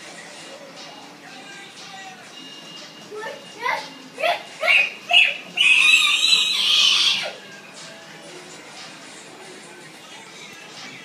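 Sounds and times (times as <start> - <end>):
child shrieking: 4.2 - 7.4
child squealing: 4.2 - 7.4.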